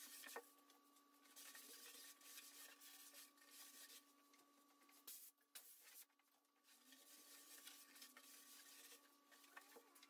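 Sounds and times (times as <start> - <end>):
hand-sanding scratchy rubbing: 1.4 - 4.0, 7.0 - 9.0.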